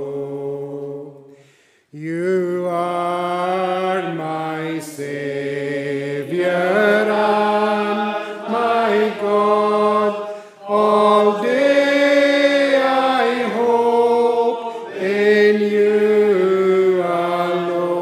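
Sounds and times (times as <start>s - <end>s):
congregation singing a psalm: 0.0s - 18.0s.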